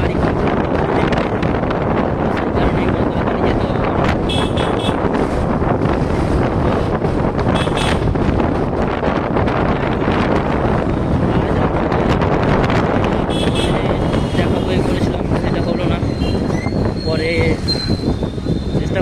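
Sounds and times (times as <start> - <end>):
road and traffic noise: 0.0 - 19.0
wind rushing over microphone: 0.0 - 19.0
vehicle horn beeps: 4.3 - 5.0.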